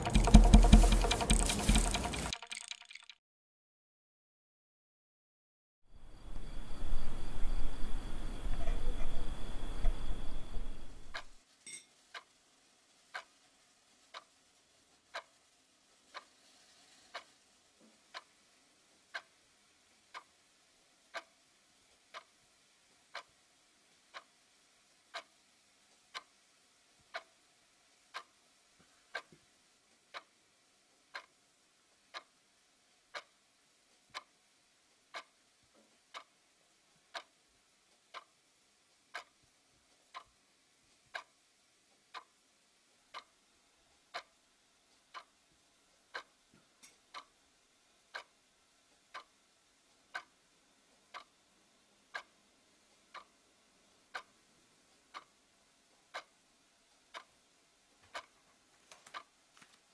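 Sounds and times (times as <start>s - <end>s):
clock ticking: 0.0s - 3.1s, 13.1s - 13.4s, 14.1s - 14.4s, 15.0s - 15.4s, 17.1s - 17.3s, 18.1s - 18.4s, 19.1s - 19.4s, 20.0s - 20.5s, 21.1s - 21.4s, 22.0s - 22.4s, 23.0s - 23.4s, 24.1s - 24.4s, 25.1s - 25.4s, 26.0s - 26.4s, 27.0s - 27.4s, 28.0s - 28.4s, 29.1s - 29.4s, 30.1s - 30.4s, 31.1s - 31.4s, 32.1s - 32.4s, 33.1s - 36.4s, 37.1s - 39.4s, 40.0s - 40.4s, 41.0s - 42.5s, 43.1s - 47.4s, 48.0s - 59.7s.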